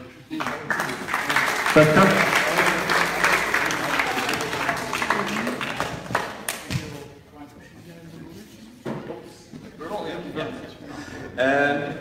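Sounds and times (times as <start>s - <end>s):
audience applauding: 0.3s - 6.7s.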